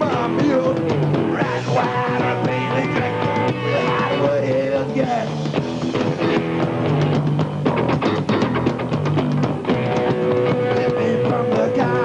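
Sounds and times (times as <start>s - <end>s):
funk-rock band playing: 0.0s - 12.0s.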